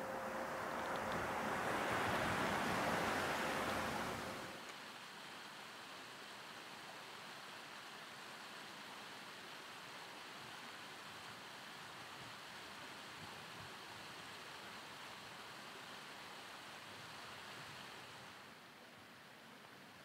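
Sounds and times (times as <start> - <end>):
water rushing through sluice channel: 0.0 - 20.0.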